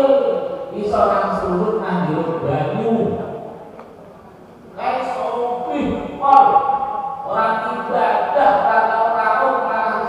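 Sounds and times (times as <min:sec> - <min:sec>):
leading voice through microphone: 0:00.0 - 0:03.6, 0:04.8 - 0:10.0.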